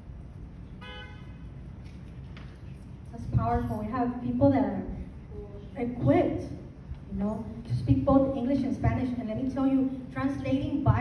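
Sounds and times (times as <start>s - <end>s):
short horn toot: 0.8s - 1.5s.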